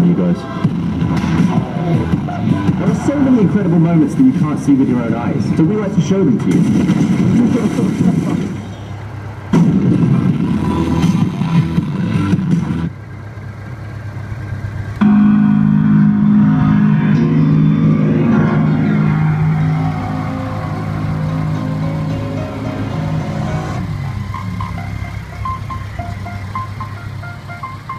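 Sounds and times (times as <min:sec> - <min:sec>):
music from motorcycle speakers: 0:00.5 - 0:04.0, 0:10.2 - 0:12.9, 0:15.0 - 0:27.9
steady low hum: 0:14.6 - 0:27.2.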